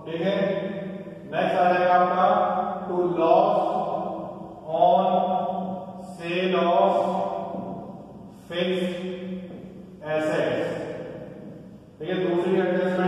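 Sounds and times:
man chanting: 0.0 - 7.8, 8.4 - 9.3, 10.0 - 10.8, 12.0 - 13.0.

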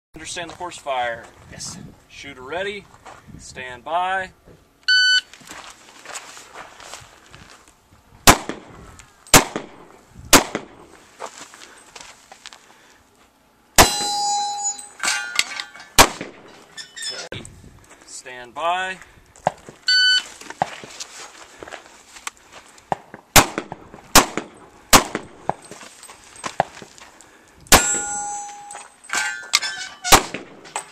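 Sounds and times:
shot timer beep: 4.9 - 5.3, 19.9 - 20.2
feet scuffing on gravel: 5.3 - 7.8, 11.0 - 12.7, 19.4 - 22.8, 25.5 - 27.2
shuffling and rustling: 5.3 - 8.1, 10.9 - 13.4, 19.0 - 22.9, 25.5 - 27.3
pistol shots: 8.2 - 8.7, 9.3 - 10.8, 13.8 - 14.1, 16.0 - 16.5, 23.3 - 25.5, 27.7 - 28.3, 30.0 - 30.7
steel target ringing: 13.8 - 17.2, 27.7 - 30.9.

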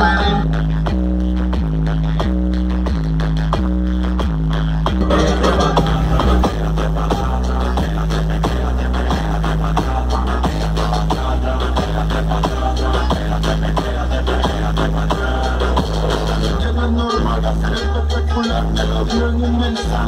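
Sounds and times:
electronic music with deep bass: 0.0 - 20.0.

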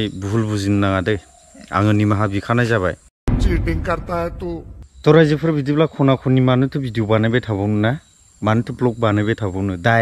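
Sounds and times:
crickets droning: 0.0 - 3.1, 3.7 - 10.0
man talking: 0.0 - 10.0.

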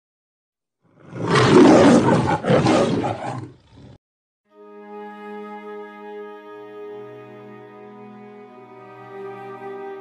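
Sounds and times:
lion roar: 0.9 - 4.0.

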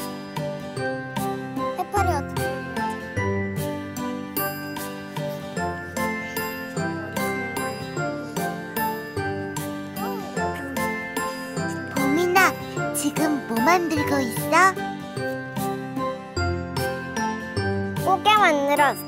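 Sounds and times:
children's background music: 0.0 - 19.0
child's voice: 1.7 - 2.5, 10.0 - 14.8, 18.0 - 19.0.

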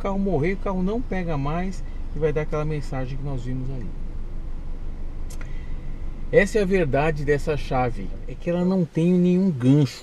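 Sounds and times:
car cabin rumble: 0.0 - 10.0
brief click: 5.3 - 5.6.

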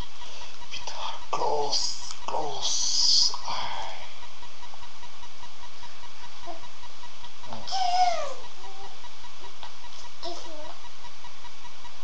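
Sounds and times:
low buzzing hum: 0.0 - 12.0
toddler babbling: 7.5 - 9.0, 10.2 - 10.8
toddler squealing: 7.6 - 9.0.

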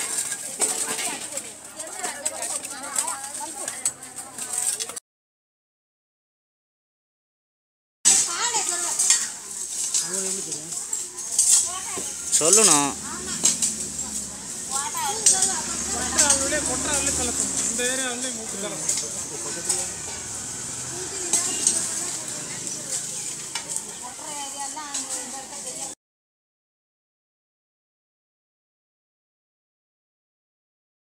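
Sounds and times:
raking debris on earth: 0.0 - 5.0, 8.1 - 25.9
women's voices: 23.8 - 25.9.

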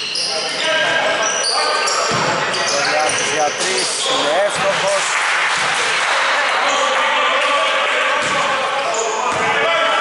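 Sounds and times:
sneakers squeaking on wooden floor: 0.0 - 5.0.

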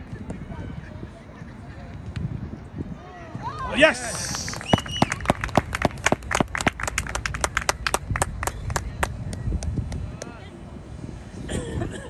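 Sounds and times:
people clapping: 4.1 - 10.3.

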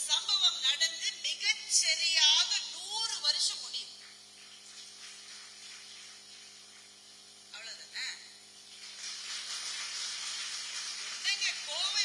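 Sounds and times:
audience clapping: 4.7 - 6.2, 8.8 - 11.8.

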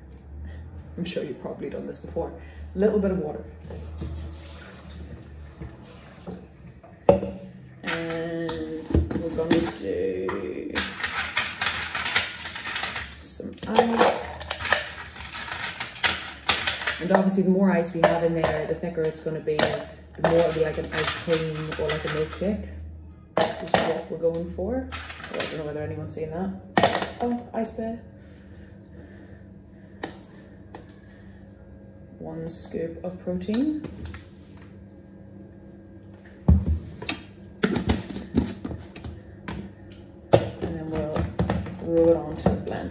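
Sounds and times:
low steady hum: 0.0 - 42.9
ice cubes clattering: 10.8 - 17.3, 19.7 - 22.4, 24.9 - 25.6.

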